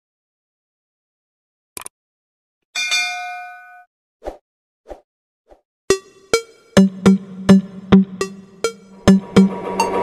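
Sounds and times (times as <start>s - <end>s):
notification bell ding: 2.8s - 3.9s.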